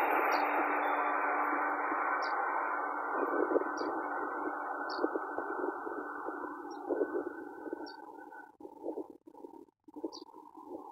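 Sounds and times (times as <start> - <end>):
electric train rumbling: 0.0 - 10.9.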